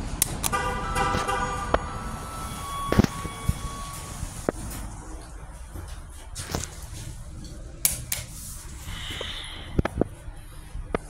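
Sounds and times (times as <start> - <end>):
hissing whir of elevator doors: 1.8 - 6.1.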